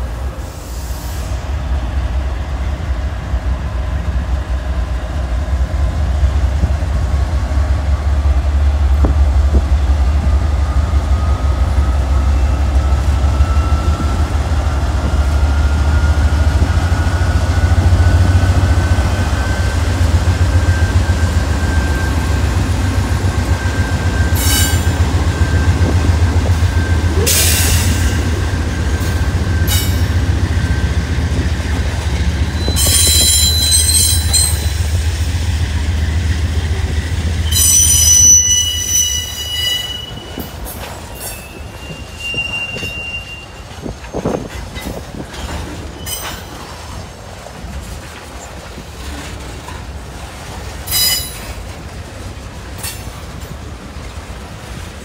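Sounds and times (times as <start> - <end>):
diesel locomotive engine rumble: 0.0 - 55.0
high-pitched wheel squeals: 32.5 - 34.8, 37.4 - 44.5.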